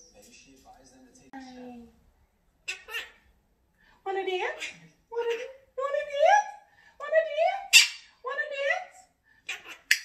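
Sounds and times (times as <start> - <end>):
parrot call: 2.6 - 3.3.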